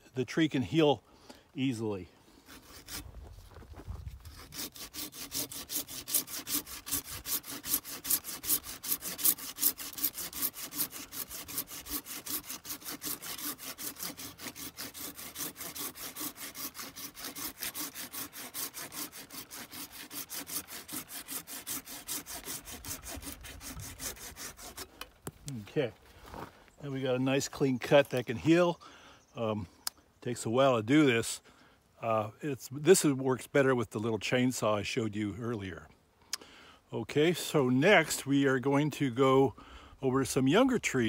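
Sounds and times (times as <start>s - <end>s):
hand saw cutting branch: 2.4s - 3.1s, 4.1s - 25.4s.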